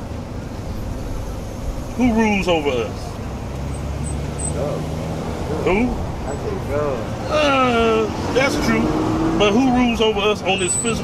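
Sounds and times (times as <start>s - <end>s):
traffic noise: 0.0s - 11.0s
vehicle engine humming: 0.0s - 11.0s.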